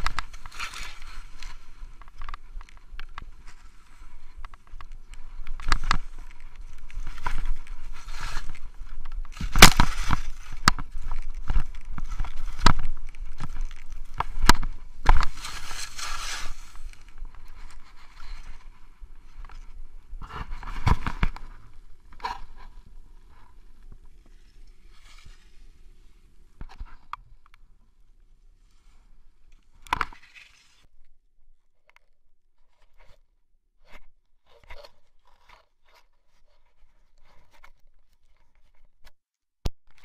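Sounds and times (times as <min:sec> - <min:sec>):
skis knocking and clattering: 0:00.0 - 0:25.8
skis scraping over snow: 0:05.2 - 0:18.8.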